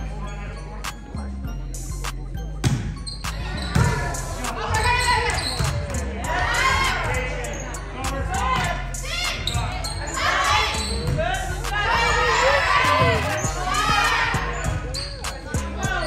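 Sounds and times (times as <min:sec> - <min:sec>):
players calling out: 0:03.0 - 0:16.0.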